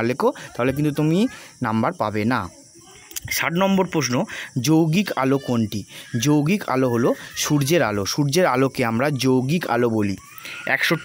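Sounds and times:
person talking: 0:00.0 - 0:11.0.

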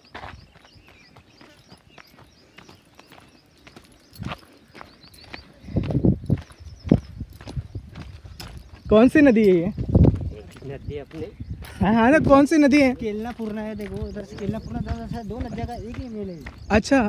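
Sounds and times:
footsteps on dirt path: 0:00.0 - 0:17.0.

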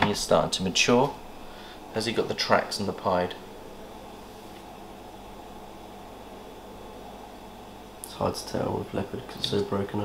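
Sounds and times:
faint hum: 0:00.0 - 0:10.0
low hiss: 0:00.0 - 0:10.0.

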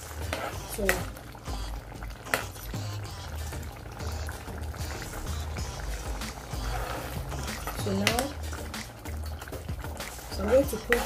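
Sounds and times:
ladle stirring pot: 0:00.0 - 0:11.0
music with low pulsing beat: 0:00.0 - 0:11.0
stew bubbling: 0:00.0 - 0:11.0.

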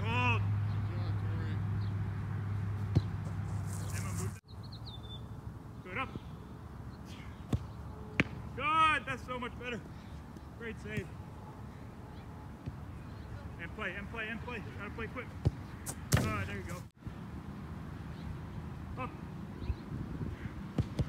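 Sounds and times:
soccer ball kick thuds: 0:02.7 - 0:04.4, 0:07.4 - 0:08.5, 0:10.4 - 0:11.2, 0:15.2 - 0:16.9, 0:20.6 - 0:21.0.

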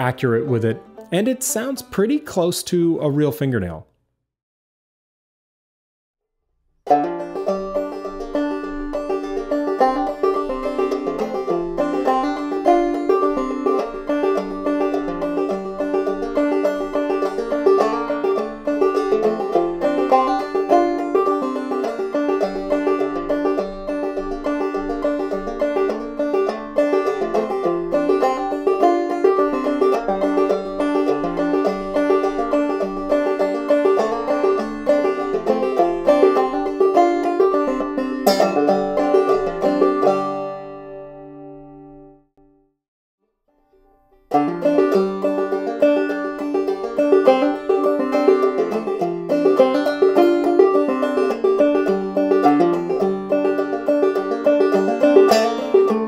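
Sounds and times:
clawhammer banjo tune: 0:00.0 - 0:03.8, 0:06.8 - 0:42.2, 0:43.6 - 0:56.0.

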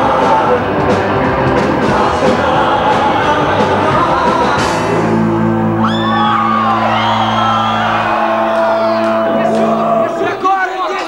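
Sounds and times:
rock band holding ringing chord: 0:00.0 - 0:11.0
crowd shouts and whoops: 0:05.4 - 0:10.4.

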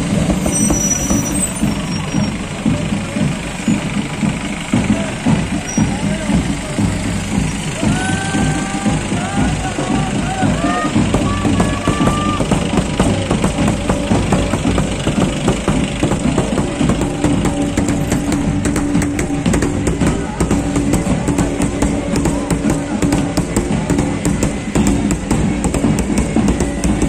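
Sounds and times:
marching band drums: 0:00.0 - 0:27.0
vehicle engines rumbling: 0:00.0 - 0:27.0.

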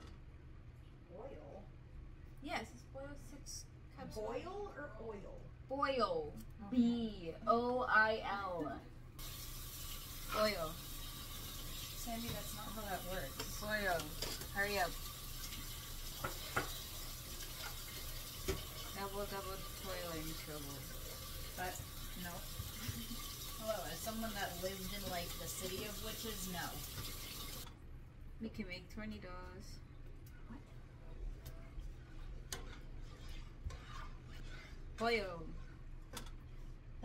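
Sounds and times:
spoon stirring water in pot: 0:09.2 - 0:27.7, 0:32.2 - 0:36.5.

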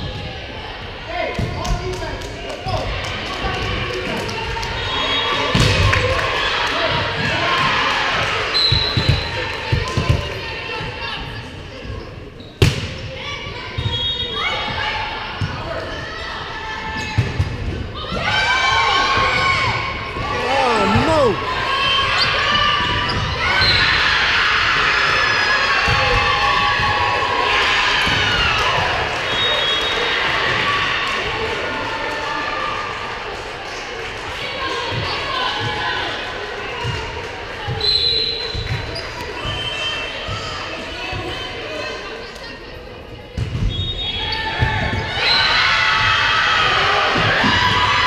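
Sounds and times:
people shouting: 0:20.2 - 0:21.7.

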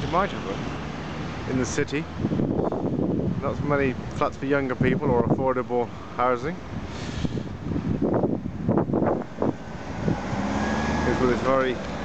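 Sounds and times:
vehicles passing on road: 0:00.0 - 0:12.0
steady engine hum: 0:05.9 - 0:12.0.

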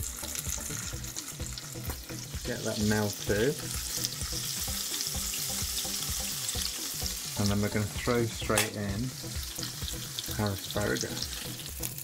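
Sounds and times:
butter sizzling in a frying pan: 0:00.0 - 0:12.0.

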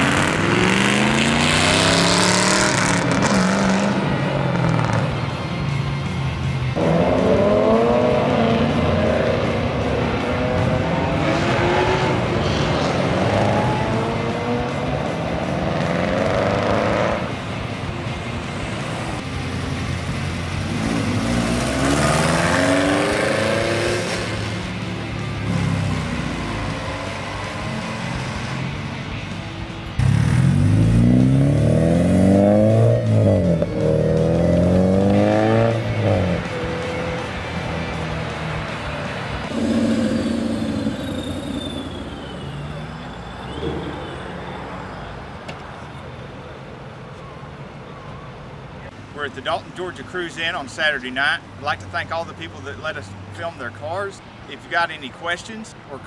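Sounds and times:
car engines revving and accelerating: 0:00.0 - 0:56.0.

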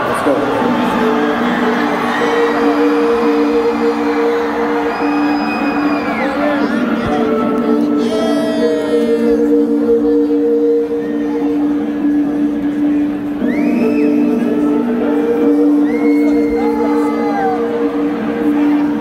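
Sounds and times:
crowd shouting and whooping: 0:00.0 - 0:09.8, 0:13.1 - 0:19.0.

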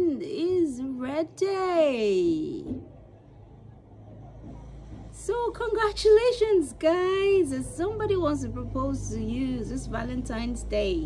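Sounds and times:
faint rumble: 0:00.0 - 0:11.0.

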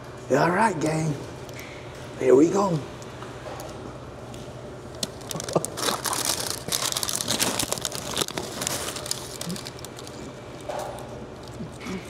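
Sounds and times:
paper wrapper crinkling: 0:05.0 - 0:11.9.

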